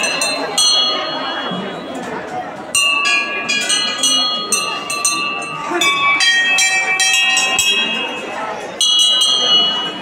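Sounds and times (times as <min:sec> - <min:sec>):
brass temple bells ringing: 0:00.0 - 0:02.0, 0:02.7 - 0:10.0.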